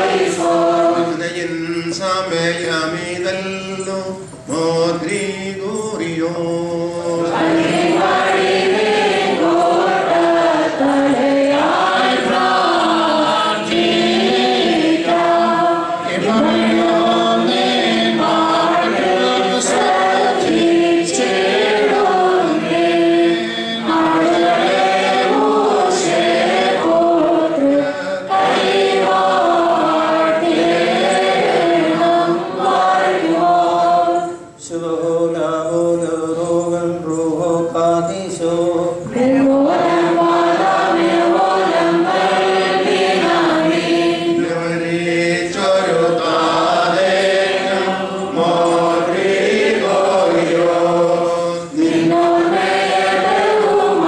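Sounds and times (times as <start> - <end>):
group singing liturgical chant: 0.0 - 54.0.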